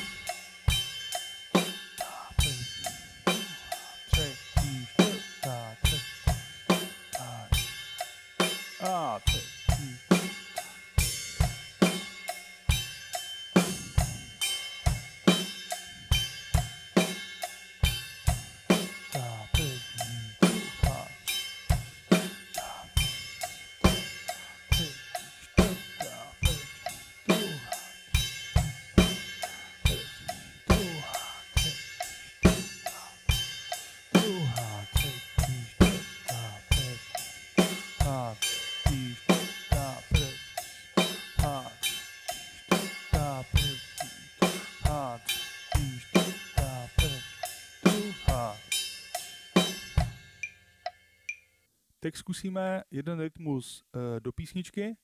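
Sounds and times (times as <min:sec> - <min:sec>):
ride cymbal eighth notes: 0:00.0 - 0:51.4
bass drum: 0:25.6 - 0:26.8, 0:34.2 - 0:37.0, 0:38.0 - 0:40.4, 0:46.6 - 0:47.2.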